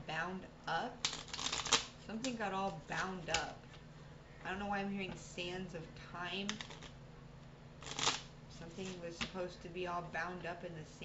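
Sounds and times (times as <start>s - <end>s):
cards being shuffled: 1.0s - 3.6s, 6.5s - 7.0s, 7.8s - 9.4s.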